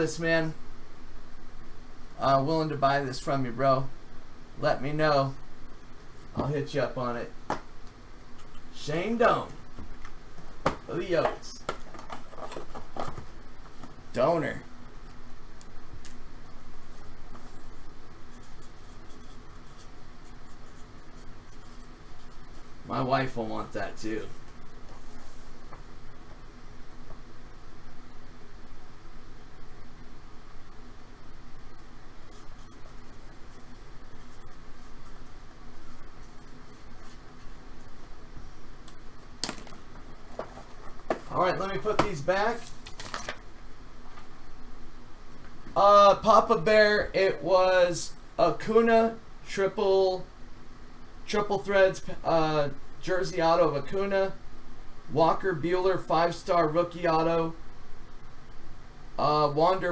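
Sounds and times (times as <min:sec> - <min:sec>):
background hiss: 0:00.0 - 0:59.9
marker scratching: 0:17.4 - 0:22.7.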